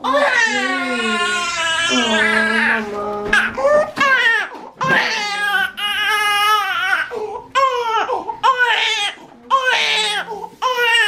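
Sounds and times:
infant crying: 0.0s - 11.0s.

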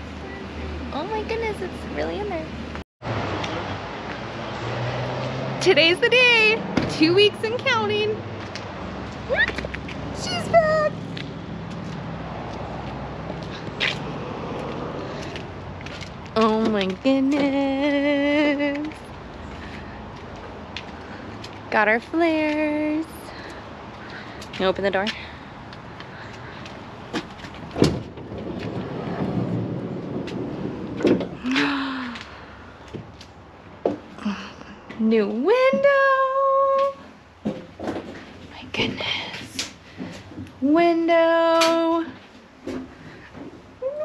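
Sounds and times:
sliding door rolling on track: 27.6s - 31.4s.

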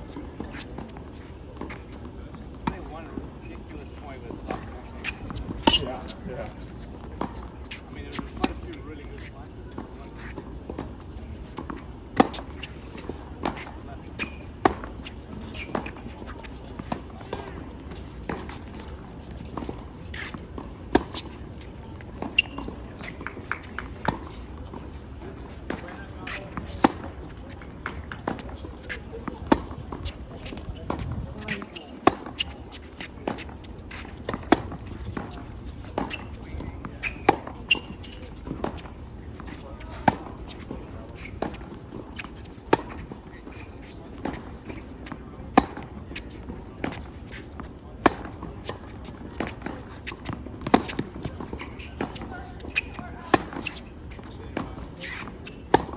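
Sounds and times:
tennis racquet hitting ball: 25.5s - 53.8s.

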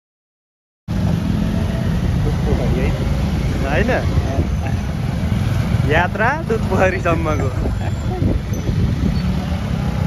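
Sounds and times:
motorbike engines rumbling: 0.9s - 10.0s
road noise: 0.9s - 10.0s.

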